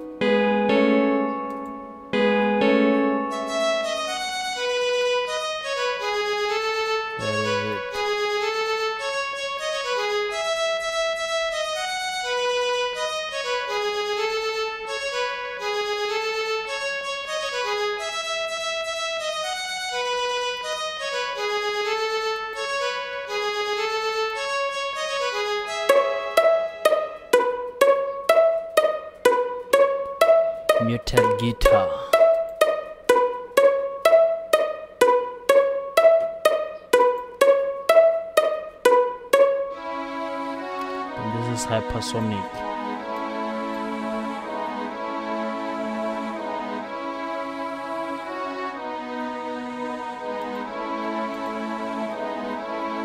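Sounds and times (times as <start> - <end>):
synthesizer string melody: 0.0 - 9.0, 24.9 - 53.0
synthesized muted guitar plucks: 7.2 - 8.1, 25.9 - 39.8.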